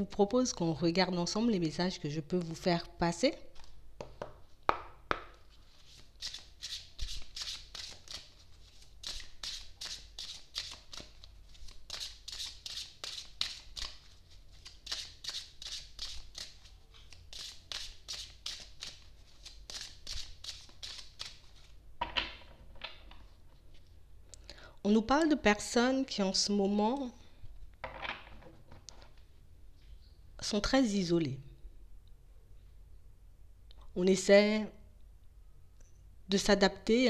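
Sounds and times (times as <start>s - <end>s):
cards being shuffled by hand: 5.2s - 21.8s.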